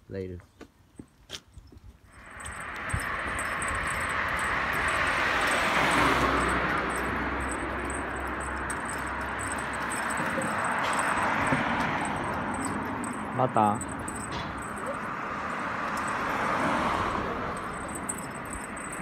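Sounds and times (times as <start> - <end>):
road traffic passing: 2.0 - 19.0.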